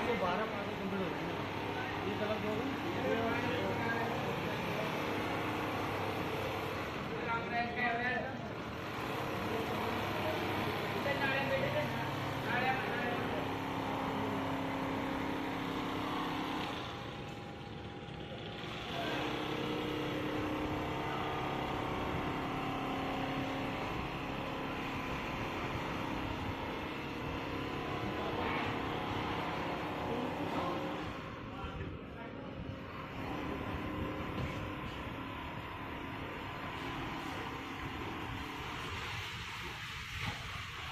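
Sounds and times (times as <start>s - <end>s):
quilting machine running: 0.0s - 40.9s.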